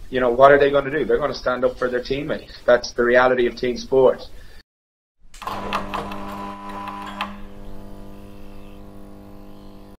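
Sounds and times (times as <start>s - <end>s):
neon sign humming and buzzing: 5.4s - 10.0s.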